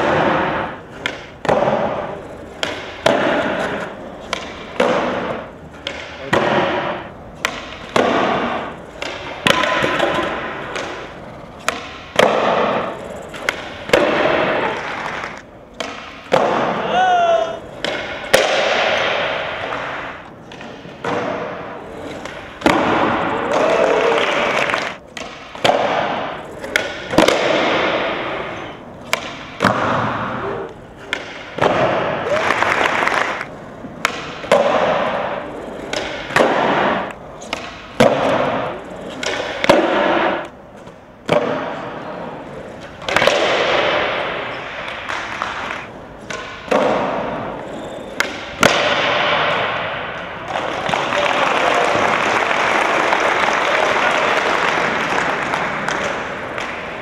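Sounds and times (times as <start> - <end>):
skateboard wheels rolling: 0.0 - 16.9, 17.6 - 49.8
skateboards clacking on concrete: 0.0 - 57.0.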